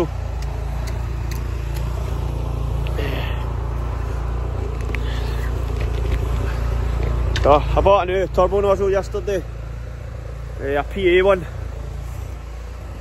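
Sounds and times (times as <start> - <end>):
engine running steadily: 0.0 - 13.0.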